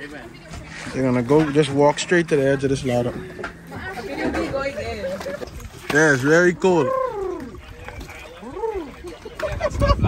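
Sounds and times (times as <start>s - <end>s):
low rumble: 0.0s - 5.9s
background chatter: 0.0s - 10.0s.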